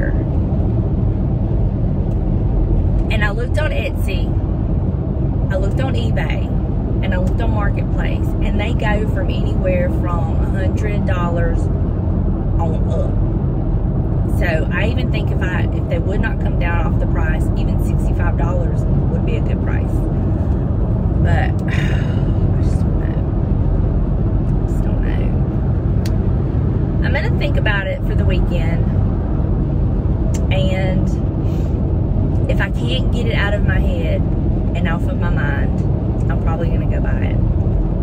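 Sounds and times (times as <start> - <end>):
woman talking: 0.0 - 0.3, 3.1 - 4.4, 5.5 - 11.6, 14.3 - 20.0, 21.2 - 23.3, 24.7 - 25.4, 27.0 - 28.9, 30.4 - 31.2, 32.5 - 37.4
car road and engine noise: 0.0 - 38.0.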